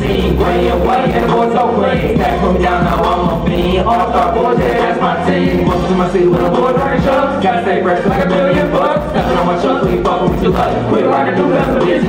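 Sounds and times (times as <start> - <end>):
hip-hop beat over loudspeakers: 0.0 - 12.0.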